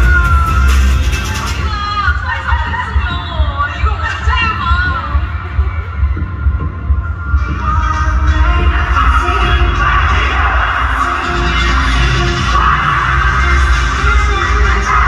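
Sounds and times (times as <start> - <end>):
heavy low rumble: 0.0 - 15.0
music over arena sound system: 0.0 - 15.0.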